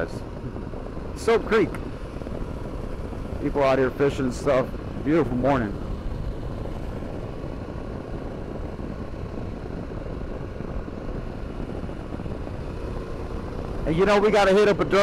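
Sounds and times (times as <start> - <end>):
motorcycle road noise: 0.0 - 15.0
wind rush: 0.0 - 15.0.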